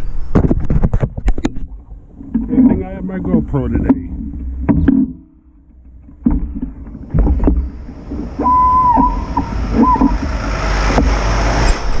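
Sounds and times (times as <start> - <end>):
wind rumble on microphone: 0.0 - 12.0
sharp knocks: 2.3 - 11.6
high steady squeal: 4.2 - 12.0
heavy truck passing: 7.0 - 12.0.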